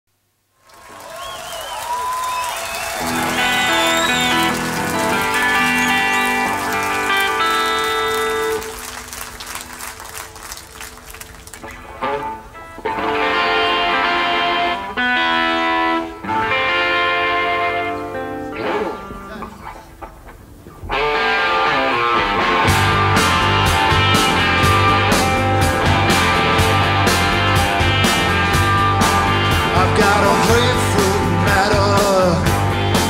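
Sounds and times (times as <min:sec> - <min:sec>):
crowd cheering and whistling: 0:00.6 - 0:11.6
rock band electric guitar chords: 0:02.8 - 0:33.0.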